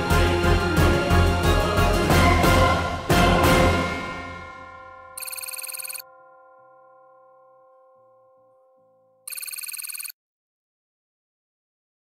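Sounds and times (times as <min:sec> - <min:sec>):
electronic telephone ring: 0:05.2 - 0:06.1, 0:09.2 - 0:10.2.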